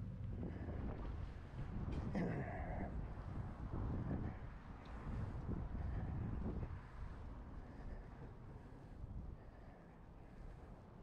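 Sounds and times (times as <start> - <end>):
wind buffeting microphone: 2.9 - 7.6.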